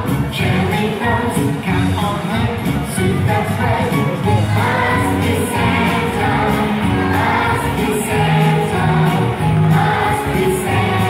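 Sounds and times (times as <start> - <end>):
instrumental accompaniment with beat: 0.0 - 11.0
group singing christmas song: 3.0 - 11.0.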